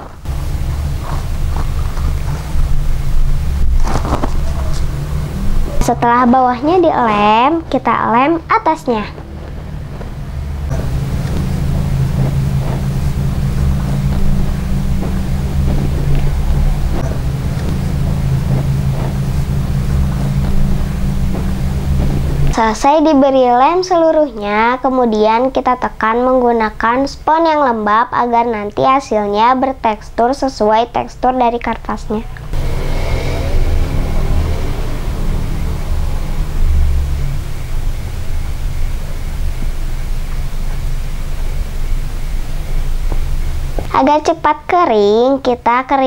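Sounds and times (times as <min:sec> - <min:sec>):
loud steady low hum: 0:00.0 - 0:46.0
low rumbling noise: 0:00.0 - 0:46.0.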